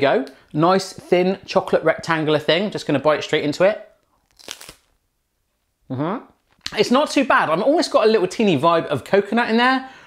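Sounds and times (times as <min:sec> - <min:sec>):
teeth crunching wafer bar: 0:04.2 - 0:04.9.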